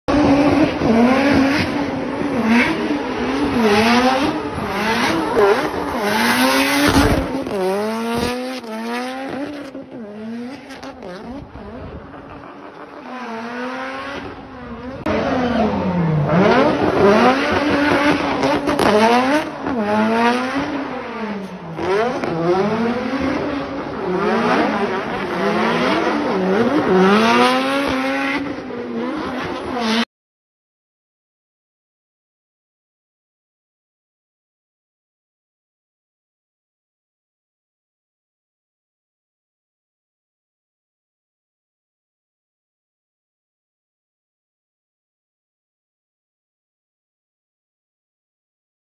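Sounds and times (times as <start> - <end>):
car engine revving: 0.1 - 30.1.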